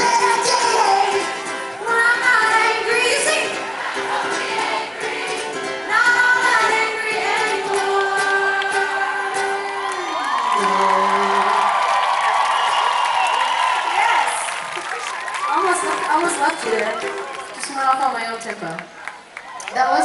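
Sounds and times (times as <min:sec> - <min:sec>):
woman singing: 0:00.0 - 0:03.6, 0:04.2 - 0:11.6
crowd cheering and screaming: 0:00.0 - 0:17.7, 0:18.9 - 0:20.0.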